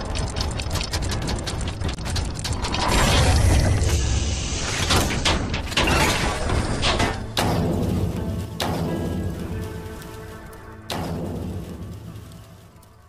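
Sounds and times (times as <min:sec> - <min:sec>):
gears ratcheting clicks: 0:00.0 - 0:03.9
low mechanical rumble: 0:00.0 - 0:05.8
heavy metal clanks: 0:04.8 - 0:12.3.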